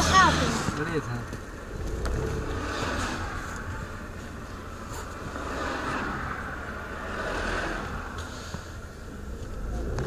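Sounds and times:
car engine and tyre noise: 0:00.0 - 0:10.0.

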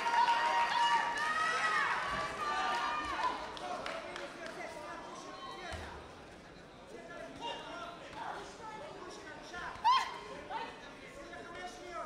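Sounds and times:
sports hall noise: 0:00.0 - 0:12.0.

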